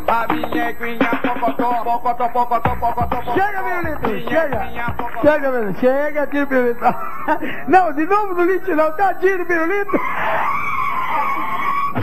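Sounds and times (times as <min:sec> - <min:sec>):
high screech sound effect: 0:09.9 - 0:12.0.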